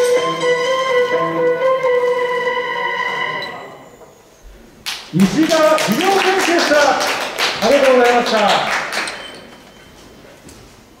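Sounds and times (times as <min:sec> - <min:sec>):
voice echoing in a hall: 0:00.0 - 0:09.5.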